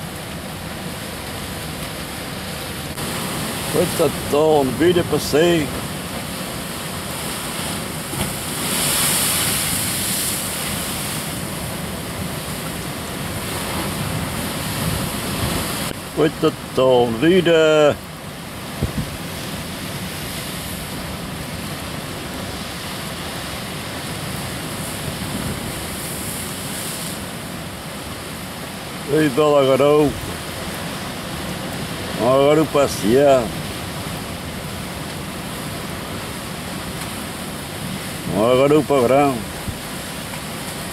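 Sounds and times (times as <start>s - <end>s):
sea surf on rocks: 0.0s - 40.9s.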